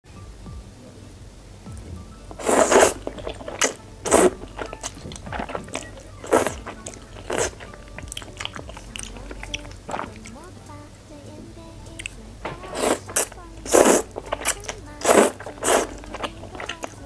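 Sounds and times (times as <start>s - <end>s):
wet chewing: 2.3s - 10.8s, 11.8s - 17.0s
person slurping noodles: 2.4s - 10.2s, 12.6s - 16.9s.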